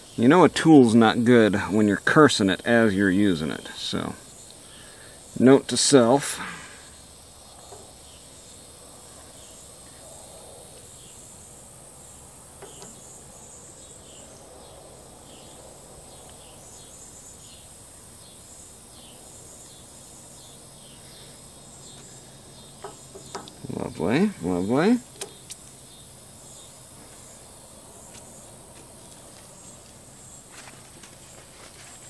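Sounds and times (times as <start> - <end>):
insects chirping: 0.0 - 32.0
sharp clicks: 25.0 - 25.7.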